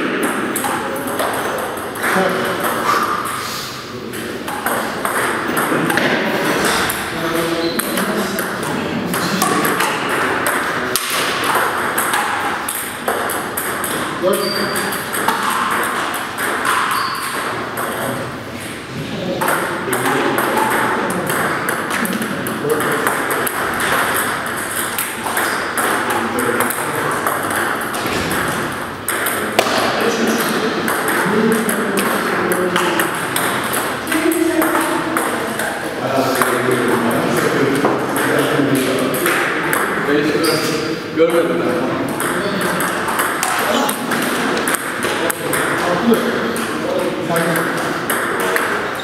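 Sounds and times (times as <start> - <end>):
table tennis balls clicking: 0.0 - 3.4, 4.1 - 49.0
voices talking: 0.0 - 49.0.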